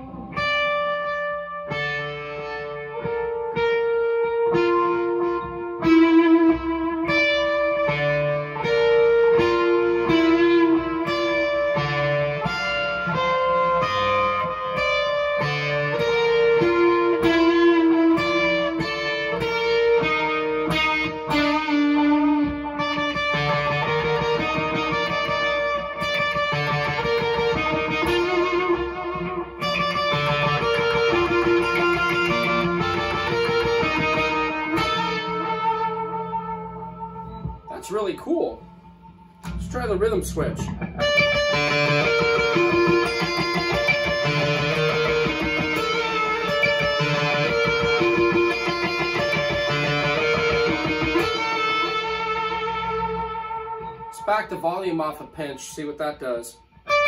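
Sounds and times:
fuzzed electric guitar melody: 0.0 - 57.0.

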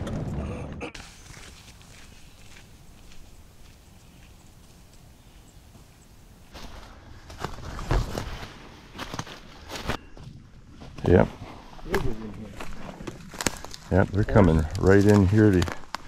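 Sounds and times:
footsteps crunching dry leaves: 1.0 - 10.0, 12.1 - 16.0.

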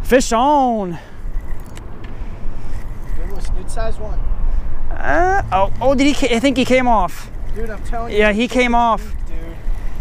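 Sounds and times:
fishing reel cranking: 1.2 - 3.8.

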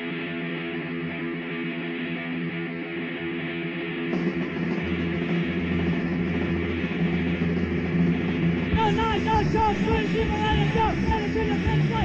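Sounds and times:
electric guitar chords: 0.0 - 12.0
bass guitar: 4.1 - 12.0.

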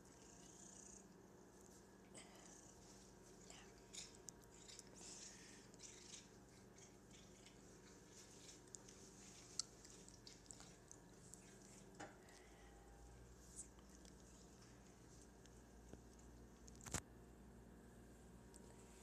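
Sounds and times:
cat chewing wet clicks: 3.7 - 12.4.

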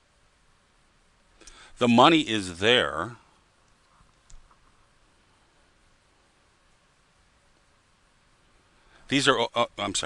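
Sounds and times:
man speaking: 1.8 - 3.2, 9.1 - 10.0.

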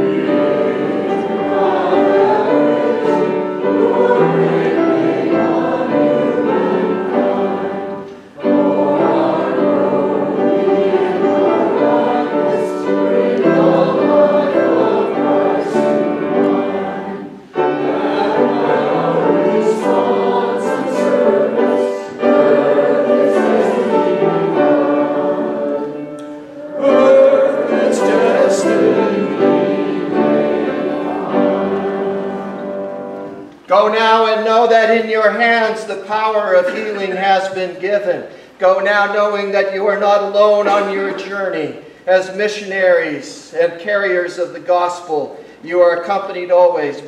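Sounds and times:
congregation singing a hymn: 0.0 - 47.0.

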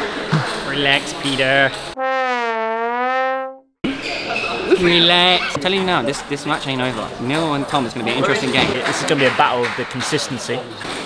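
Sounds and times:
held brass note: 2.0 - 3.7.

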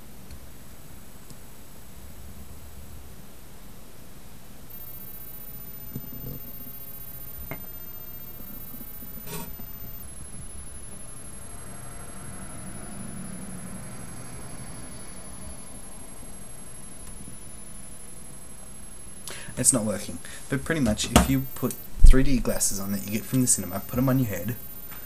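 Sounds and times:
microphone hiss: 0.0 - 25.0.

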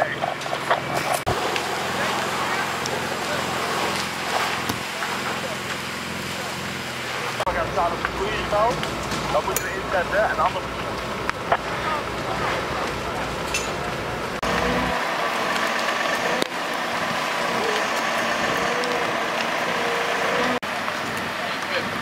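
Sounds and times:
drone of engines and pumps: 0.0 - 22.0
faint fire crackling: 0.0 - 22.0
indistinct voices: 0.0 - 22.0.

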